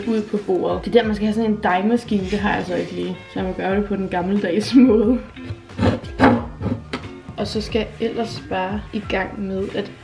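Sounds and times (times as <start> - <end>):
background guitar music: 0.0 - 10.0
spatula scraping dough in bowl: 5.5 - 6.9.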